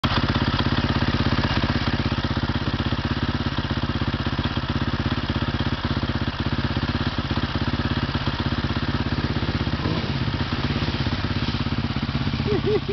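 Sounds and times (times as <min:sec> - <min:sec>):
dirt bike riding through puddles: 0:00.0 - 0:12.9
motorcycle engine idling: 0:00.0 - 0:12.9.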